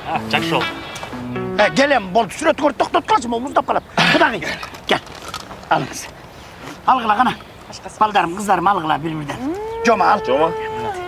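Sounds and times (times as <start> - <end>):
person talking: 0.0 - 3.4
voice holding a long note: 9.4 - 11.0.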